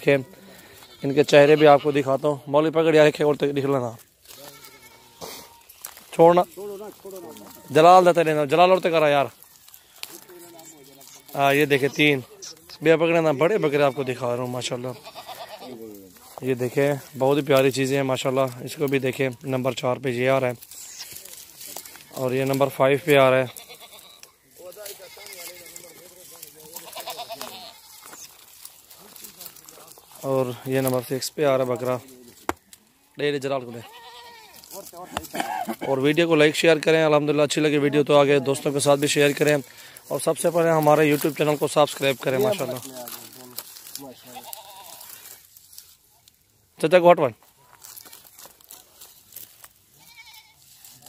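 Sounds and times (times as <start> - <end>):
goat bleating: 0.0 - 16.4, 20.3 - 31.0, 31.7 - 37.0, 37.6 - 45.3, 49.9 - 51.0.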